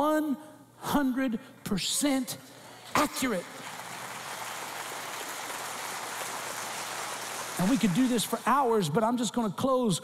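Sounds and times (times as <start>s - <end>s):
crowd applauding: 2.6s - 8.7s.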